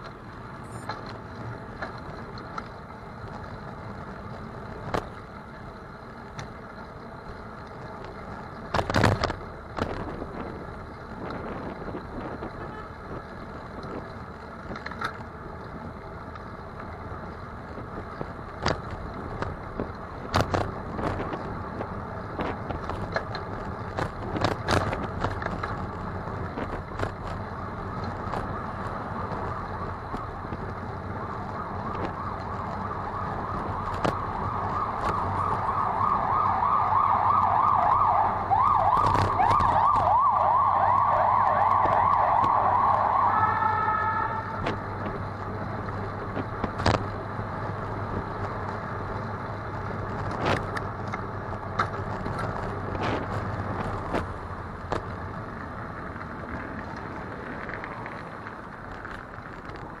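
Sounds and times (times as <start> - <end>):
street traffic: 0.0 - 60.0
emergency siren yelping: 31.5 - 44.6.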